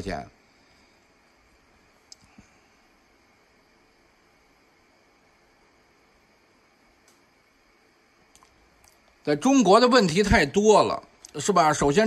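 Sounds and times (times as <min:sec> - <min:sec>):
small clicks: 0:02.1 - 0:02.4.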